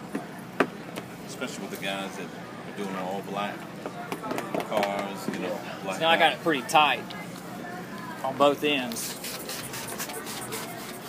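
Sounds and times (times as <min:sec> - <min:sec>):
spray bottle spritzing: 0:08.9 - 0:11.0.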